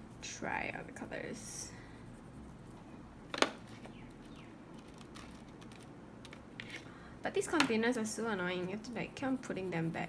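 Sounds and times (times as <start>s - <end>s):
faint clicks and taps: 3.3s - 6.9s.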